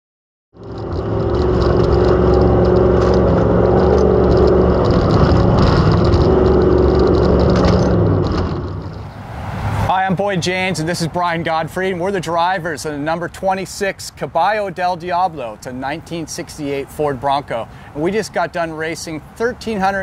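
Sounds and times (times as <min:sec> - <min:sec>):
truck engine running at speed: 0:00.6 - 0:13.4.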